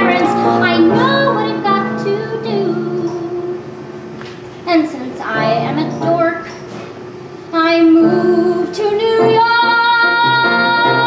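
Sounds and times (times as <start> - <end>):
woman singing: 0.0 - 3.7, 4.7 - 6.5, 7.5 - 11.0
piano accompaniment: 0.0 - 7.1, 7.8 - 11.0.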